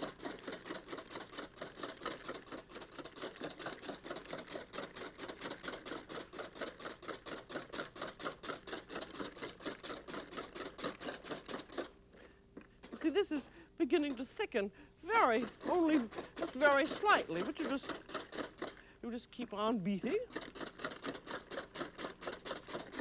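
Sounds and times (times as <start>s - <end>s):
whisk clattering in metal bowl: 0.0s - 11.9s, 12.8s - 14.3s, 15.1s - 18.8s, 19.5s - 23.0s.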